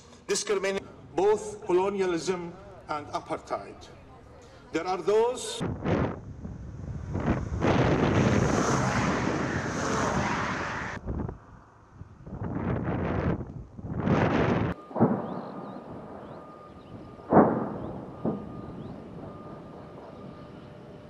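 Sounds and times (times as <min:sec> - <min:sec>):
distant artillery booms: 0:14.7 - 0:20.9.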